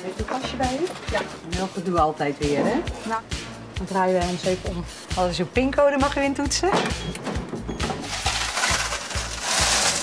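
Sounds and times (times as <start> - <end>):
background music with low beat: 0.0 - 8.5
cash machine rattling hiss: 8.0 - 10.0.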